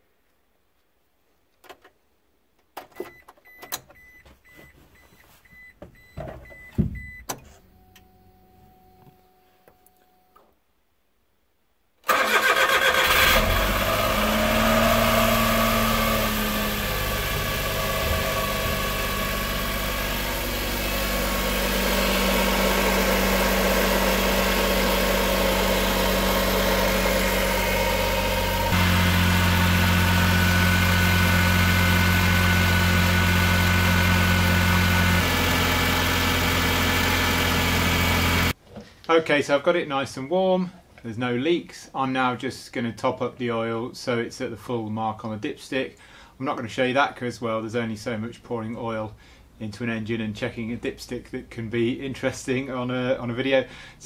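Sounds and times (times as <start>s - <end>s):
truck engine cranking and starting: 12.0s - 38.6s
engine idling: 13.4s - 38.6s.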